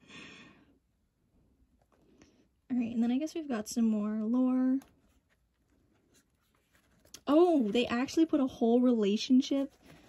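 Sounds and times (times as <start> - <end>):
book page turning: 4.7 - 8.6, 9.3 - 10.0.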